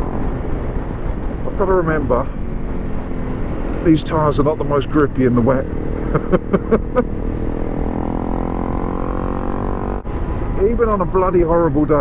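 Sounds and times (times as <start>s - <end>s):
motorcycle engine revving: 0.0s - 10.1s.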